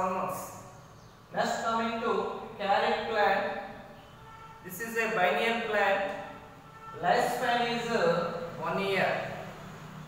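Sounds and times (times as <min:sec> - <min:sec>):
man speaking: 0:01.3 - 0:04.0, 0:04.6 - 0:06.4, 0:07.0 - 0:09.4.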